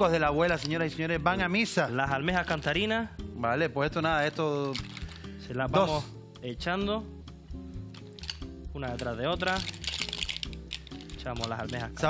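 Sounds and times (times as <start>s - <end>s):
background music: 0.0s - 12.0s
person speaking: 8.2s - 12.0s
clam shells clinking on glass: 9.4s - 11.9s.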